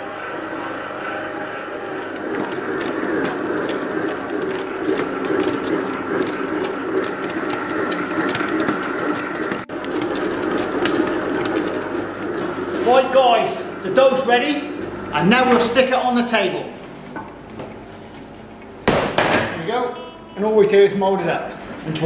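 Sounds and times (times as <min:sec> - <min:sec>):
dough mixer motor humming: 0:00.0 - 0:17.6.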